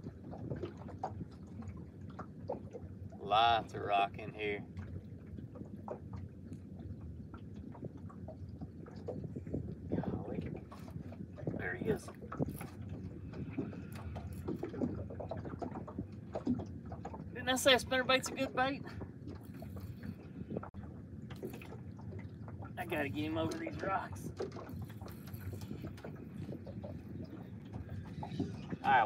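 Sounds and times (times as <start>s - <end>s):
water lapping against boat hull: 0.0s - 29.0s
wind noise: 6.8s - 21.7s, 22.8s - 29.0s.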